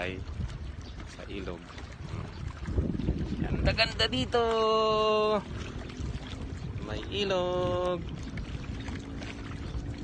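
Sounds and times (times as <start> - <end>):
wind on microphone: 0.0 - 10.0.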